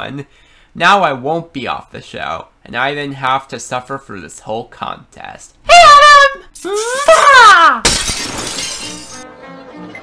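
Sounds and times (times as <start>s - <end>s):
glass shattering sound effect: 7.8s - 9.2s.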